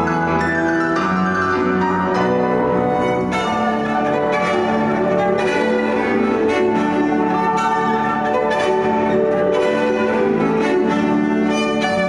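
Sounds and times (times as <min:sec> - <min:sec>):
piano accompaniment: 0:00.0 - 0:12.0
cello bowing sustained notes: 0:02.2 - 0:12.0.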